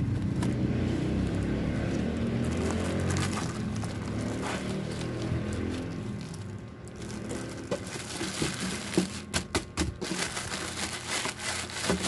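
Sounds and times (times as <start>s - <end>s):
plastic packaging crinkling: 2.4s - 12.0s.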